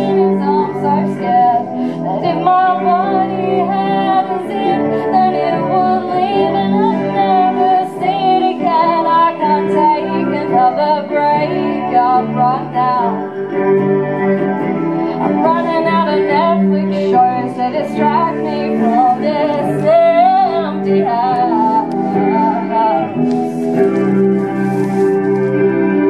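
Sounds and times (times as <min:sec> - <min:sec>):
woman singing: 0:00.0 - 0:13.3, 0:15.2 - 0:25.0
guitar chords: 0:00.0 - 0:26.0.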